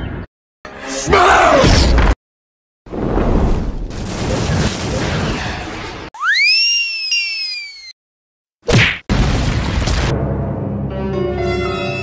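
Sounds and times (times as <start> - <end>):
gliding whistle: 6.2 - 8.0.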